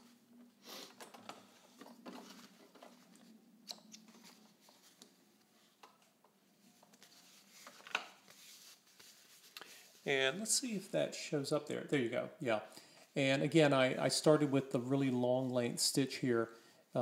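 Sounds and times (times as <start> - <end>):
fabric rustling: 6.6 - 10.2.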